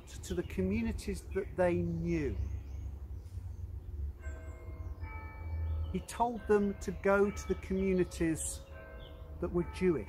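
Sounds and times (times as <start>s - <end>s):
church bells ringing: 0.0s - 2.8s, 4.1s - 10.0s.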